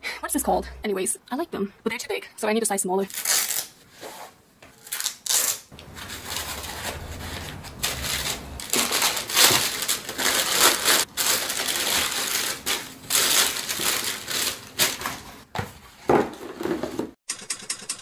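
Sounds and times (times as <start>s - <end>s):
paper and plastic crinkling: 4.8s - 17.0s.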